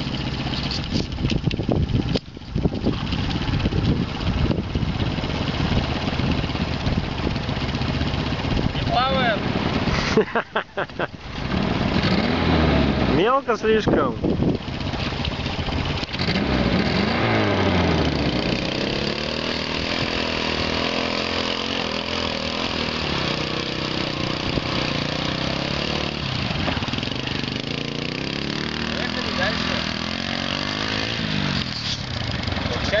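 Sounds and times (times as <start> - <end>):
atv engine under load: 0.0 - 33.0.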